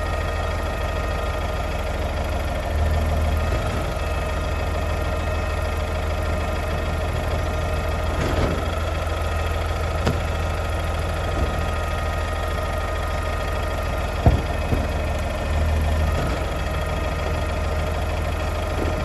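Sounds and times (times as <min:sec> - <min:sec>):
truck engine idling: 0:00.0 - 0:19.0.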